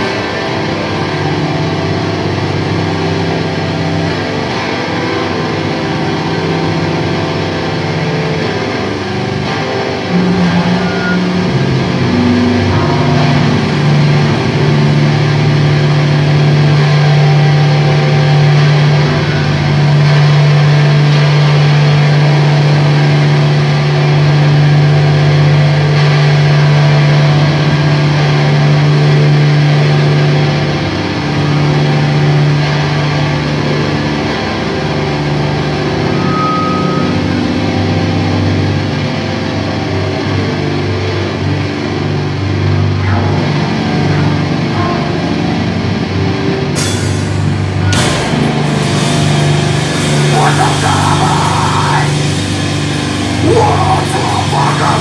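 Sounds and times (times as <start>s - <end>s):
distorted guitar and bass drone: 0.0s - 55.0s
high feedback tone: 9.8s - 15.6s, 36.0s - 38.4s.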